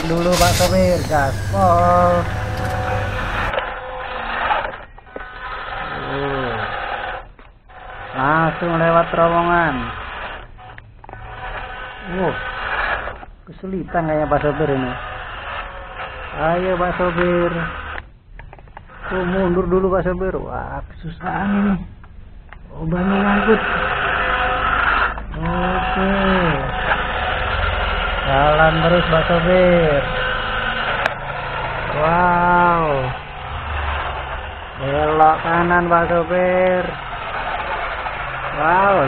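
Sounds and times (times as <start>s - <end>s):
man's drawn-out voice: 0.0s - 3.5s, 22.7s - 23.9s, 25.4s - 26.8s, 28.2s - 30.1s, 31.9s - 33.2s, 34.8s - 37.0s, 38.6s - 39.0s
toy car electric motor whirring: 0.0s - 20.1s, 22.8s - 39.0s.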